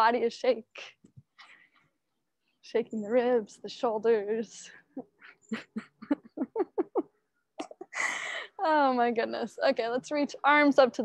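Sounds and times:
woman laughing: 5.0s - 8.4s.

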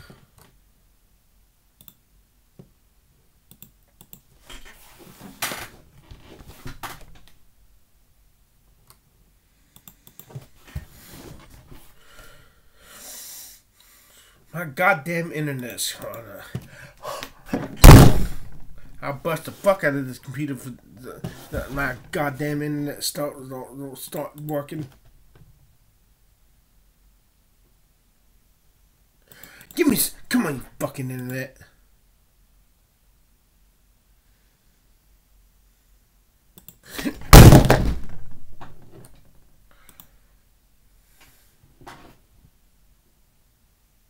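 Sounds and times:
loud rumbling thump: 17.8s - 18.7s
heavy slam: 17.8s - 18.8s, 37.3s - 38.6s.

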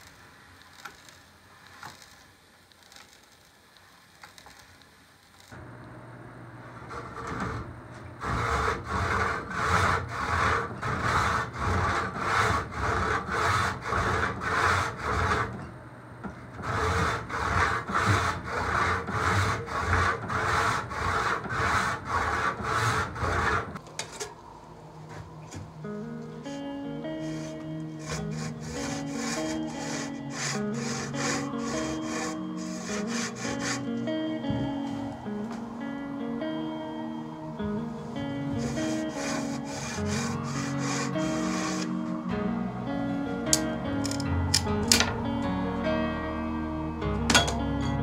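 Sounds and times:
hand saw cutting wood: 8.2s - 15.6s, 16.6s - 23.8s, 27.2s - 34.1s, 38.5s - 42.0s.

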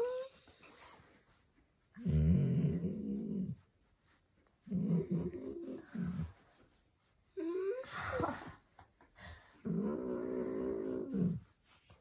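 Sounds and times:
dog grumbling moans: 2.0s - 3.6s, 4.6s - 6.4s, 9.5s - 11.6s.

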